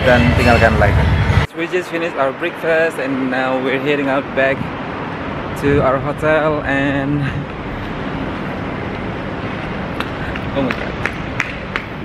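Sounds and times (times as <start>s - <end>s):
road traffic: 0.0s - 12.0s
wind rumbling on microphone: 4.5s - 12.0s.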